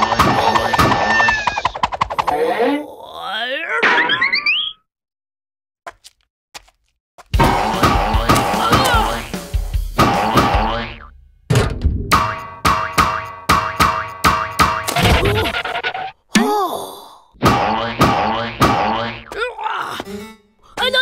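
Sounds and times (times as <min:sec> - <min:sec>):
cartoon music stabs: 0:07.4 - 0:11.1, 0:12.1 - 0:16.1
springy boing sound effect: 0:10.0 - 0:11.1, 0:17.5 - 0:19.3.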